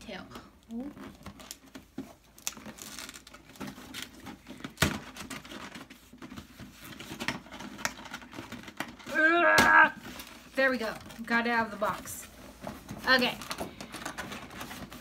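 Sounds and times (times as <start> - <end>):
packaging rustling and crinkling: 0.6 - 15.0.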